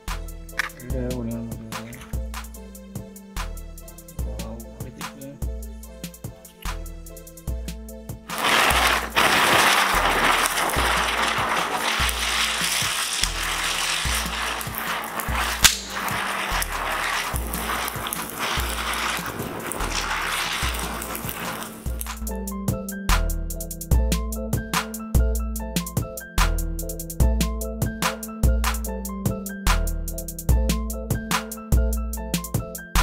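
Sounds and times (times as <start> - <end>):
background music with bass beat: 0.0 - 19.3, 19.9 - 33.0
sharp crack: 0.6 - 0.9, 8.3 - 22.3
firework hissing: 8.3 - 22.3.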